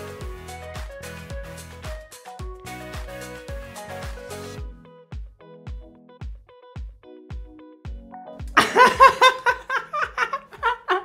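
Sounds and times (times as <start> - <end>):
background music with thumping beat: 0.0 - 9.6
man laughing loudly: 8.6 - 11.0.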